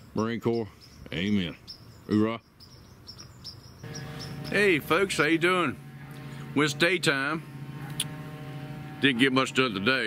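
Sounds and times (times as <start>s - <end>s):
crickets chirping: 3.4s - 4.9s
steady hum: 3.8s - 10.0s
man speaking: 4.4s - 5.8s.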